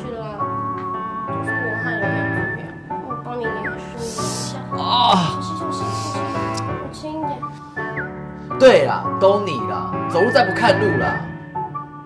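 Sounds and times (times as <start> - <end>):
soft sustained accompaniment: 0.0 - 12.0
whistle-like lead melody: 1.2 - 4.6, 7.6 - 8.3, 9.1 - 12.0.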